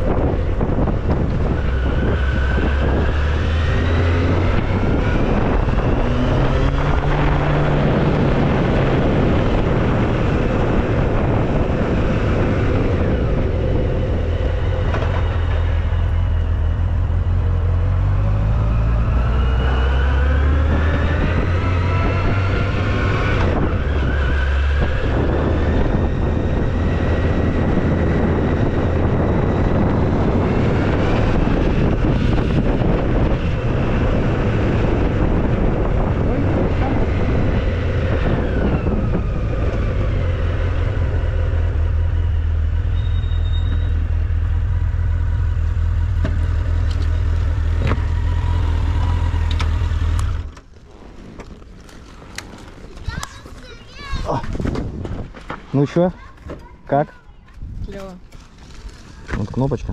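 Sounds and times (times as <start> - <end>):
motorcycle engine accelerating: 0.0 - 51.1.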